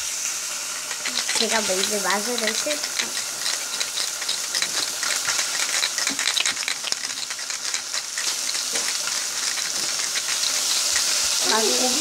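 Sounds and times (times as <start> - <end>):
crackling hiss: 0.0 - 12.0
small objects rattling and clicking: 0.5 - 12.0.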